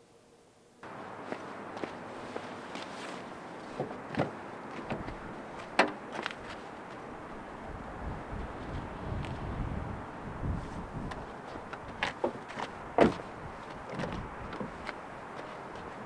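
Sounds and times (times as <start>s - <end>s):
outdoor background hiss: 0.0s - 16.0s
light footsteps: 0.8s - 7.1s, 10.5s - 16.0s
car door unlatching and opening: 3.8s - 6.3s, 13.0s - 13.2s.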